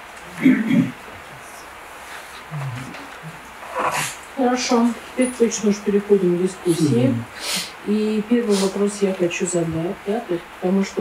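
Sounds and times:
room hiss: 0.0s - 11.0s
low voice murmuring: 0.3s - 1.7s, 2.4s - 4.2s, 6.6s - 7.3s
person speaking: 0.3s - 1.7s, 2.4s - 11.0s.

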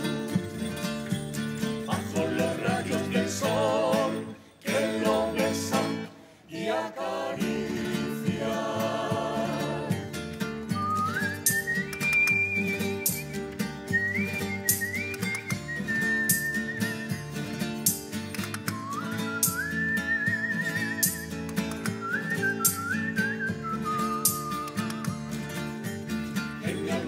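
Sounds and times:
acoustic guitar accompaniment: 0.0s - 27.0s
man whistling a melody: 10.6s - 17.7s, 18.6s - 25.3s.

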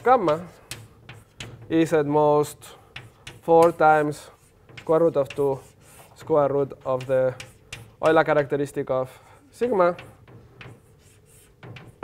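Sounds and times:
chalk writing on blackboard: 0.0s - 12.0s.

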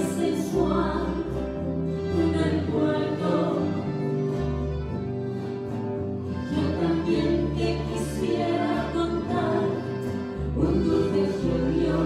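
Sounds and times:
voices singing together: 0.0s - 4.1s, 6.5s - 12.0s
accordion chords: 0.0s - 12.0s
acoustic guitars: 0.0s - 12.0s
bass guitar line: 0.0s - 12.0s.

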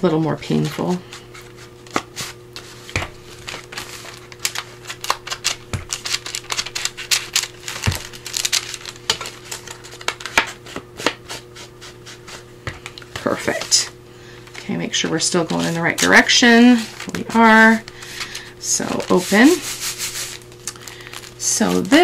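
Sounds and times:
faint steady hum: 0.0s - 22.0s
paper rustling: 0.5s - 11.2s, 15.2s - 22.0s.

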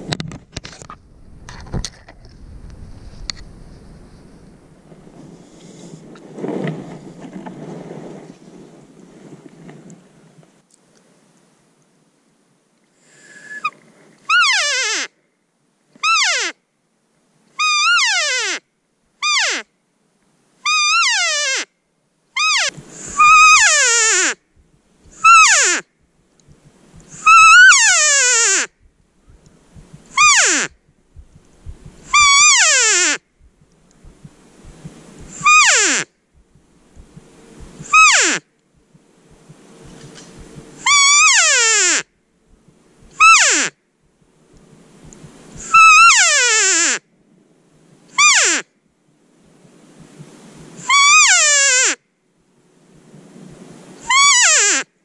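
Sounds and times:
elk calling with nasal mews: 13.6s - 15.1s, 16.0s - 16.5s, 17.6s - 18.6s, 20.6s - 21.6s, 22.4s - 24.4s, 25.1s - 25.8s, 26.5s - 38.4s, 40.3s - 42.0s, 43.0s - 43.7s, 45.1s - 47.0s, 50.8s - 52.0s, 54.0s - 54.8s.

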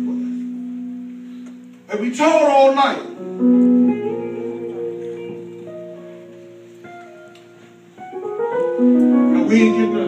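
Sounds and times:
keyboard chords: 0.0s - 10.0s
person preaching: 1.9s - 3.2s, 9.3s - 10.0s.

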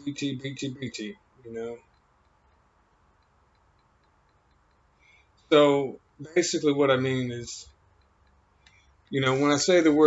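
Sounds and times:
soft regular ticks: 0.0s - 6.2s, 7.3s - 9.9s.

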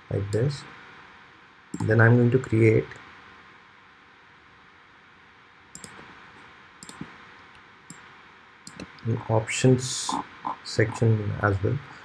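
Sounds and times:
steady low hiss: 0.0s - 12.0s
computer mouse clicks: 1.7s - 2.0s, 5.7s - 6.1s, 6.8s - 7.2s, 7.9s - 9.0s.

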